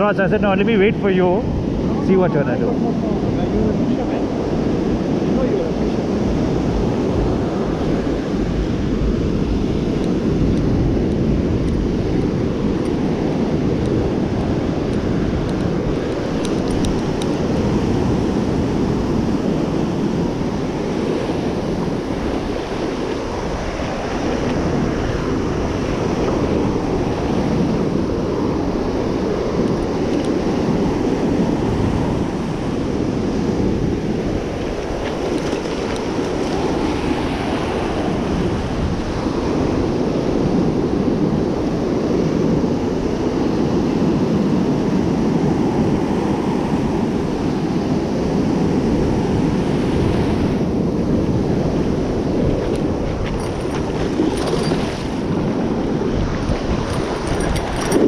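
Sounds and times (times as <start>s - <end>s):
ocean surf breaking: 0.0s - 58.0s
wind buffeting microphone: 0.0s - 58.0s.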